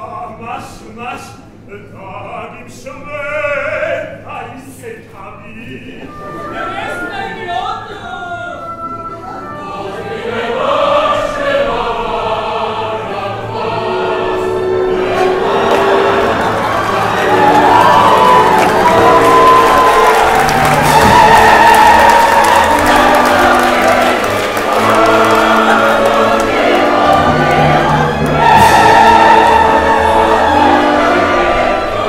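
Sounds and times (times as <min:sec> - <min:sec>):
opera chorus singing: 0:00.0 - 0:32.0
orchestra playing: 0:05.9 - 0:32.0.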